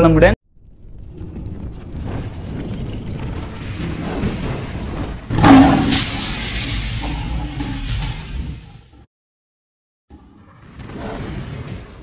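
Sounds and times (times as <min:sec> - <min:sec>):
low rumble: 0:00.5 - 0:09.1
loud blast with hissing wash: 0:05.4 - 0:08.3.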